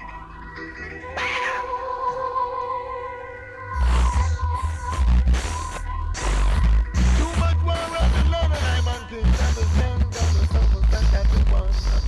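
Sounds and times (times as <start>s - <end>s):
reggae music on radio: 0.0s - 12.0s
swooping electronic sound: 3.6s - 10.4s
held tone and bass: 3.7s - 12.0s.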